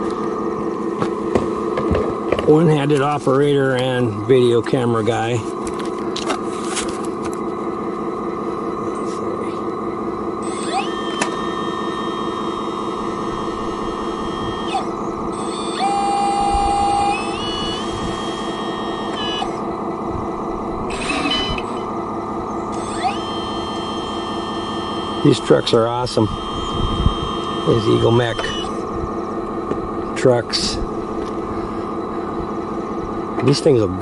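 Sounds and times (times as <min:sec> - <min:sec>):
electric motor and gears whining: 0:00.0 - 0:34.0.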